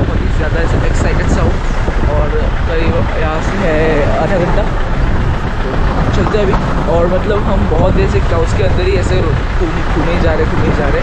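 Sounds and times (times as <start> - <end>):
man speaking: 0.0 - 4.8, 5.6 - 11.0
engine rumble: 0.0 - 11.0.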